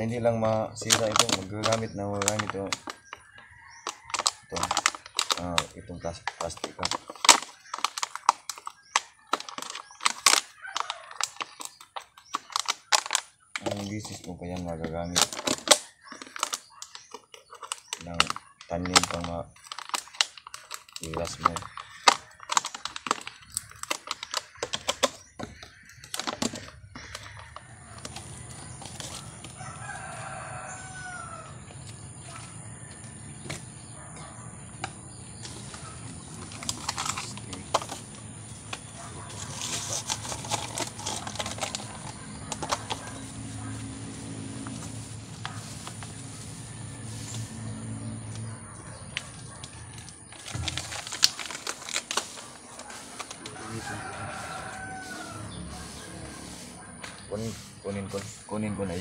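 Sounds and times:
plastic cup crackling: 0:00.0 - 0:33.8, 0:34.6 - 0:59.0
scissors cutting plastic: 0:00.8 - 0:03.2, 0:03.8 - 0:29.6, 0:35.4 - 0:43.5, 0:49.1 - 0:53.8.

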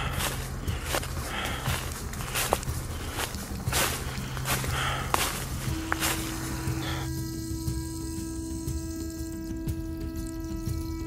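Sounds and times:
footsteps crunching dry leaves: 0:00.0 - 0:07.6.

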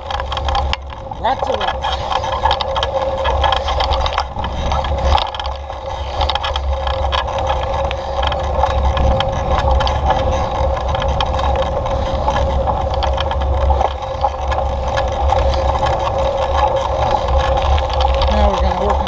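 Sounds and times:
rattles and clicks from bumps: 0:00.0 - 0:19.0
vehicle motor running: 0:00.0 - 0:19.0.

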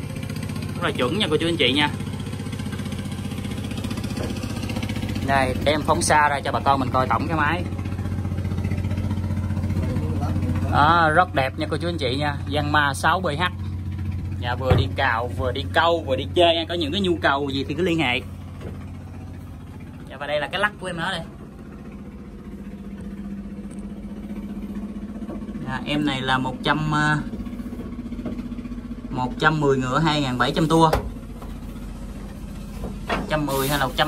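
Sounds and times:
diesel engine running: 0:00.0 - 0:34.0.

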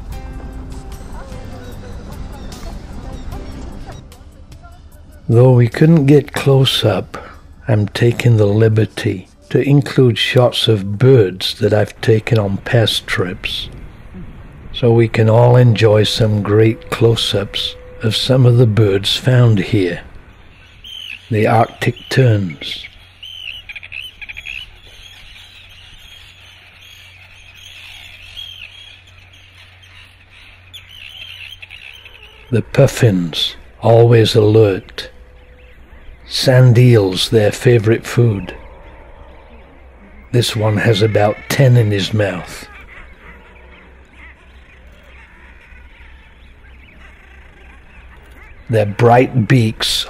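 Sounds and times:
seabirds calling: 0:00.0 - 0:50.0
steady low rumble: 0:00.0 - 0:50.0
ticking bird calls: 0:05.2 - 0:50.0
low rumble: 0:11.6 - 0:20.9, 0:32.0 - 0:40.8.

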